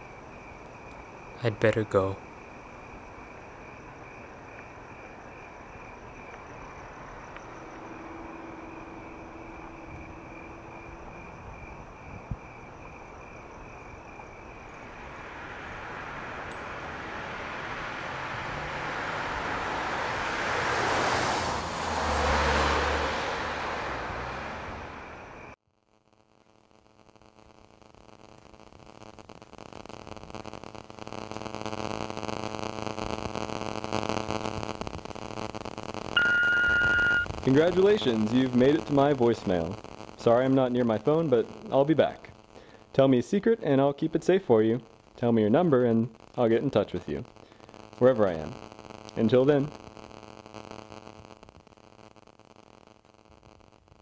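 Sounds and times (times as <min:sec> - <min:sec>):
crickets chirping: 0:00.0 - 0:25.6, 0:29.1 - 0:50.1
car passing: 0:03.9 - 0:25.6
droning tone: 0:05.9 - 0:20.7, 0:36.2 - 0:37.3.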